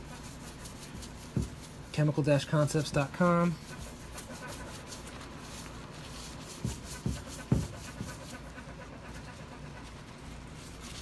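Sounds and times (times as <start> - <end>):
paper towel rubbing stone: 0.0 - 11.0
dull thumps: 1.2 - 1.7, 6.5 - 8.3.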